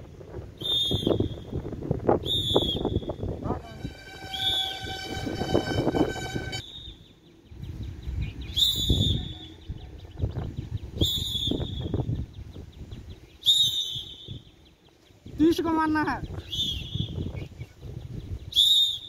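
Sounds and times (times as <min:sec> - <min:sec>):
bird high call: 0:02.2 - 0:07.4
steady horn: 0:03.4 - 0:06.6.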